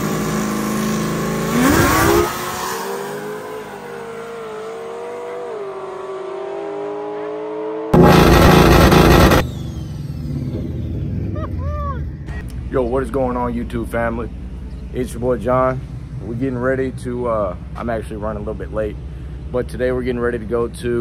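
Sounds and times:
drag car engines revving: 0:00.0 - 0:12.6
loud rush of noise: 0:08.0 - 0:09.8.

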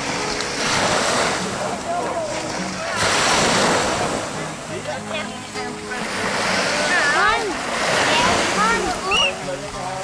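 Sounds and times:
faint voices: 0:00.0 - 0:10.0
small waves washing in: 0:00.0 - 0:10.0.

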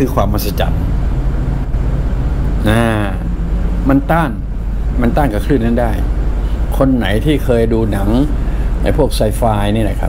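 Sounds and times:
low background hum: 0:00.0 - 0:10.0
man's drawn-out voice: 0:02.6 - 0:04.4.

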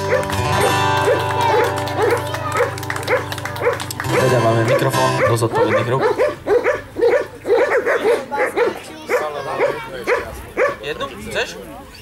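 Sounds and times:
guitar band music: 0:00.0 - 0:07.4
dog barking: 0:00.0 - 0:10.9.

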